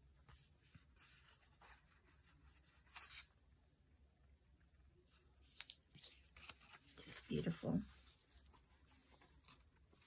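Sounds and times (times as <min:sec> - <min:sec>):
paper cards rustling: 0:02.6 - 0:03.3, 0:05.2 - 0:10.0.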